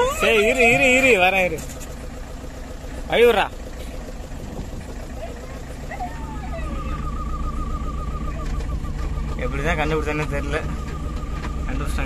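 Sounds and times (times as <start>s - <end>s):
vehicle engine running: 0.0s - 12.0s
thin wavering high tone: 6.0s - 9.6s.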